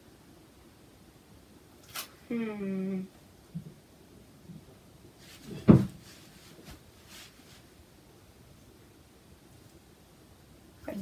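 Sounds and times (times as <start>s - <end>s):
faint rustle: 4.4s - 7.9s
dull thump: 5.5s - 6.1s.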